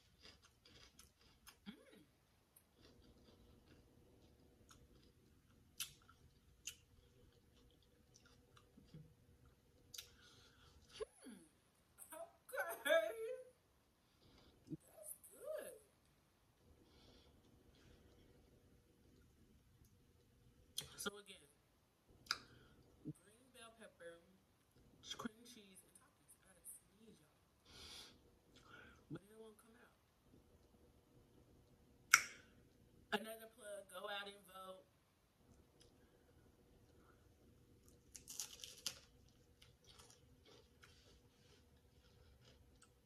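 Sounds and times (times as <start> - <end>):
faint chewing: 0.0 - 11.1, 16.0 - 20.9, 35.5 - 43.0.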